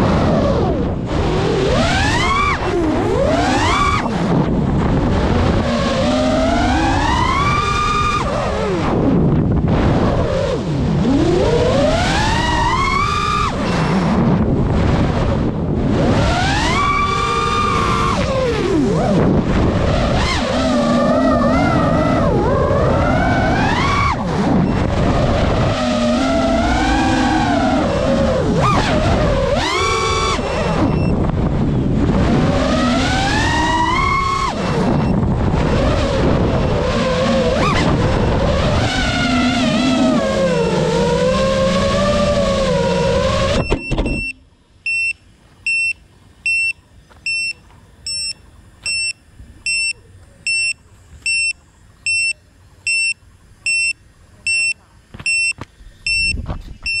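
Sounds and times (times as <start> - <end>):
quadcopter motors whining: 0.0 - 44.5
short high electronic beeps: 43.6 - 57.0.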